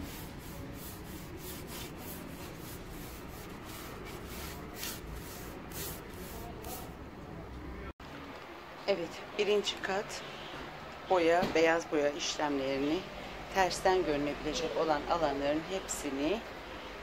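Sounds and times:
paintbrush scratchy strokes on wood: 0:00.0 - 0:07.0.

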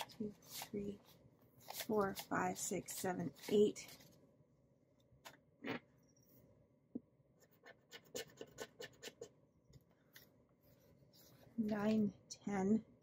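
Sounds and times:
paper rustling and scratching: 0:00.0 - 0:04.2.

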